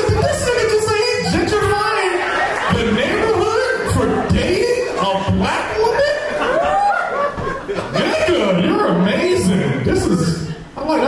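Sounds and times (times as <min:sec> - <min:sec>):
laughter in bursts: 0:02.0 - 0:05.1, 0:05.8 - 0:08.5.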